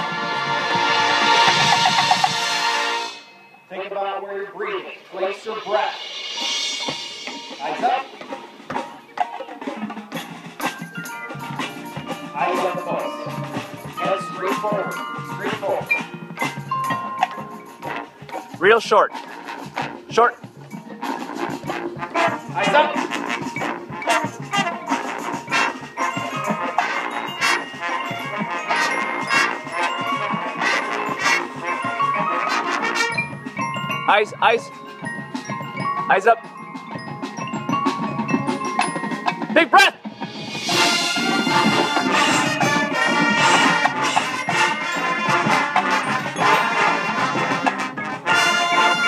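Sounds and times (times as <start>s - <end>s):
drum hits: 0.0s - 3.0s, 5.3s - 12.5s, 35.0s - 49.0s
brass and woodwind chords: 0.0s - 6.8s, 17.0s - 35.0s, 39.6s - 49.0s
marching band playing: 0.0s - 49.0s
sharp percussion strikes: 0.0s - 49.0s.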